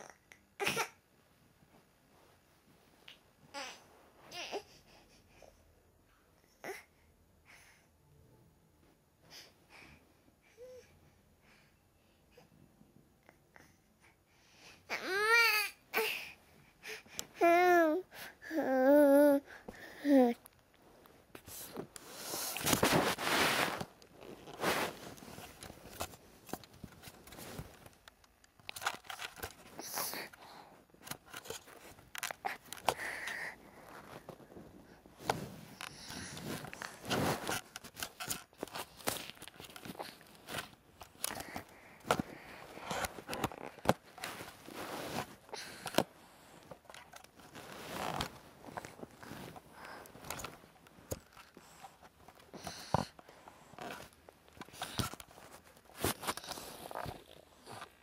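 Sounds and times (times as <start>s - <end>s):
camera handling rustling and knocking: 23.8s - 30.4s, 31.0s - 33.0s, 35.2s - 46.1s, 46.7s - 58.0s.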